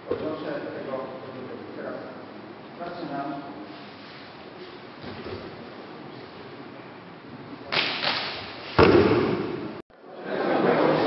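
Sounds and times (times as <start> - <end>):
body slapping onto mat: 7.7 - 9.7.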